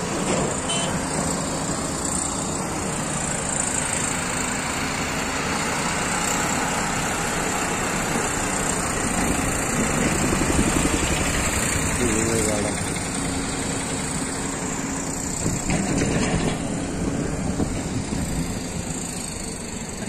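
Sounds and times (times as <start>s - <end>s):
vehicle engine and road noise: 0.0s - 20.0s.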